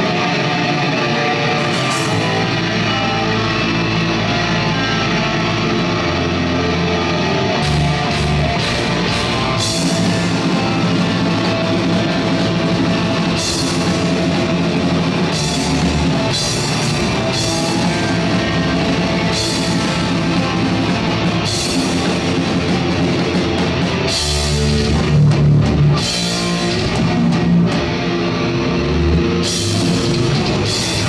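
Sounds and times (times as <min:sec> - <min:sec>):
distorted electric guitars: 0:00.0 - 0:31.0
heavy metal band playing live: 0:00.0 - 0:31.0
drum kit with cymbal crashes: 0:01.6 - 0:03.3.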